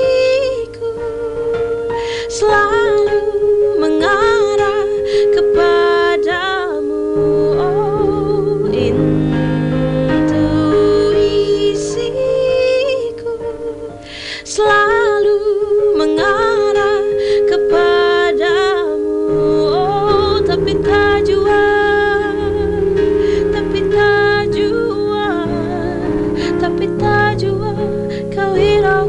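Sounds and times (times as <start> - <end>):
woman singing wordless melody: 0.0 - 29.0
held accompaniment notes: 1.3 - 14.0, 15.7 - 29.0.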